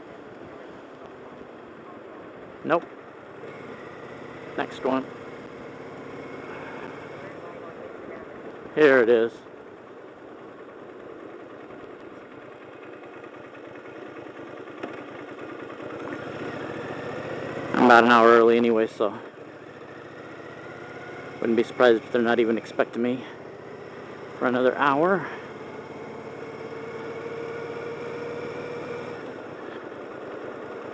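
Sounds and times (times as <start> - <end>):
motorcycle engine running: 0.0 - 30.9
wind and road noise: 0.0 - 30.9.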